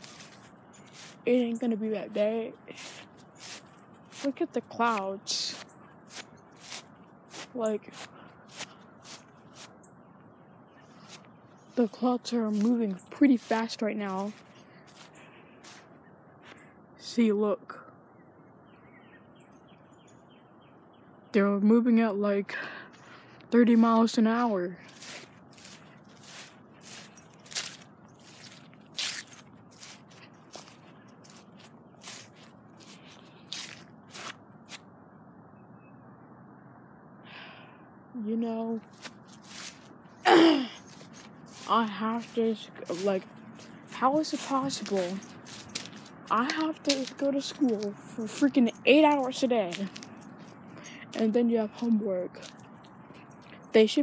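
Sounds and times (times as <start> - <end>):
footsteps on dry grass: 0.0 - 9.9, 10.8 - 15.9, 24.4 - 34.8, 38.8 - 53.7.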